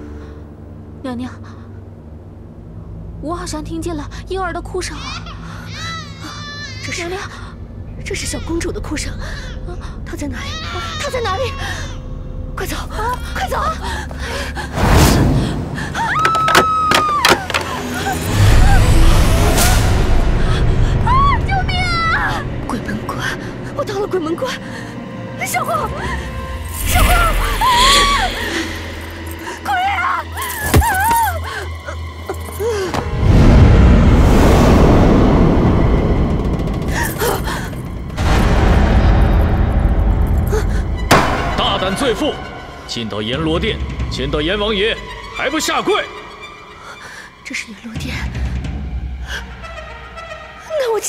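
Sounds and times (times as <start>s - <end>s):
low background drone: 0.0s - 16.2s, 31.2s - 50.8s
low rumbling sound effect: 33.2s - 43.4s.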